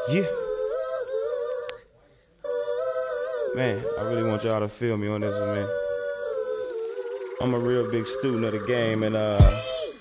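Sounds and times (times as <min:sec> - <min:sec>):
wordless vocal melody: 0:00.0 - 0:10.0.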